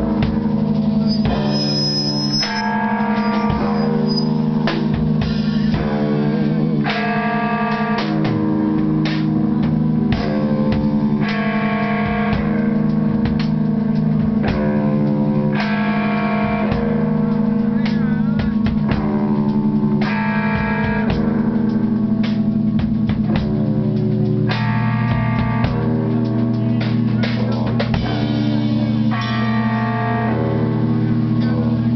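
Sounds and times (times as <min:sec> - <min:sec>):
drum hits: 0:00.0 - 0:30.2
band playing loud distorted music: 0:00.0 - 0:31.9
low drone: 0:00.0 - 0:31.9.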